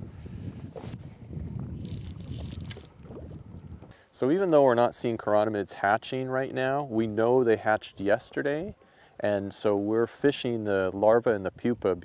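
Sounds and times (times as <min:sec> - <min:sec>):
wind buffeting microphone: 0:00.0 - 0:03.9.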